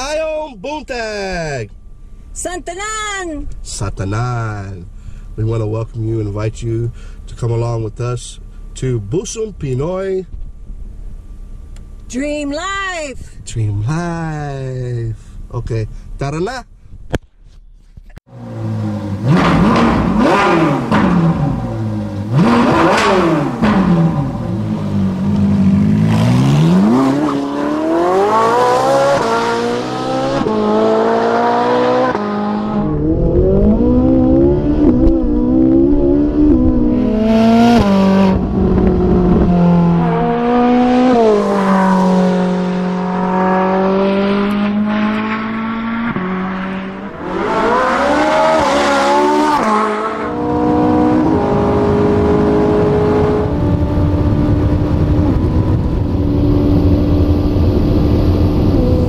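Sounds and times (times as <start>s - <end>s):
car engine revving: 18.3s - 59.0s.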